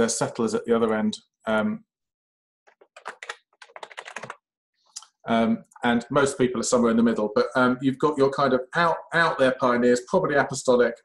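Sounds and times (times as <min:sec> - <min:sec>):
keyboard typing: 0:02.7 - 0:04.4.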